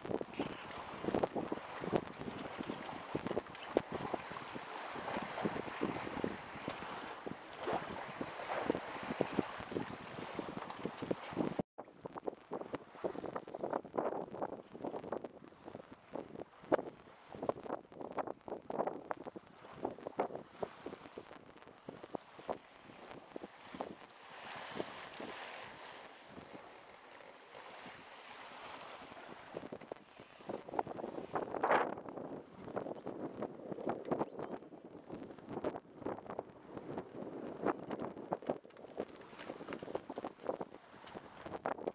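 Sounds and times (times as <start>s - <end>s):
wind buffeting microphone: 0.0s - 27.0s, 27.7s - 41.9s
water splashing against hull: 0.0s - 41.9s.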